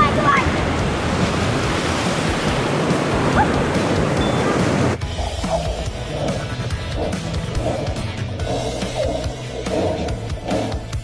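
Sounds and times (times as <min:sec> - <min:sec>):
river water rushing and splashing: 0:00.0 - 0:10.8
background music: 0:00.0 - 0:11.0.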